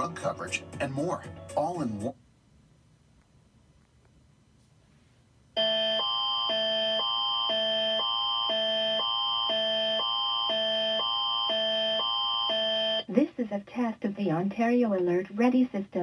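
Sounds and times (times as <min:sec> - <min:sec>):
two-tone emergency alert alarm: 0:05.6 - 0:13.1.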